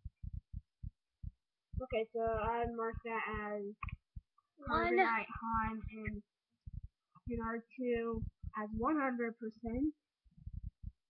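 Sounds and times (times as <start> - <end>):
dull low thumps: 0.0 - 11.0.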